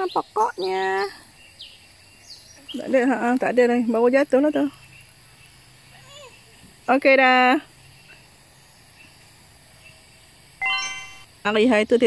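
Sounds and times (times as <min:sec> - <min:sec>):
bright bell-like chime: 0:10.6 - 0:11.3.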